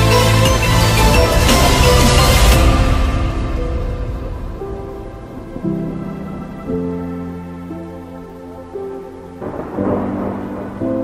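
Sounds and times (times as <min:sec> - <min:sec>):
instrumental music with sustained chords: 0:00.0 - 0:11.0
loud rushing noise: 0:00.3 - 0:07.8.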